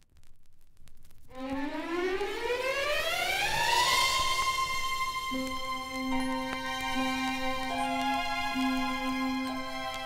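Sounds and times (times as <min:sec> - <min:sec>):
record surface crackle: 0:00.0 - 0:10.0
electronic tone sliding up: 0:01.3 - 0:06.1.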